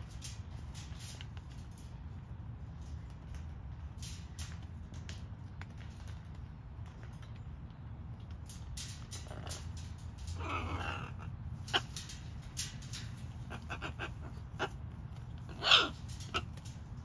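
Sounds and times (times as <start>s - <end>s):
macaws growling: 9.2s - 17.0s.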